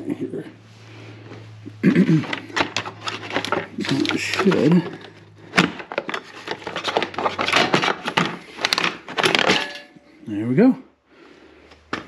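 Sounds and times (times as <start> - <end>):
plastic scraping against metal: 2.1 - 9.8.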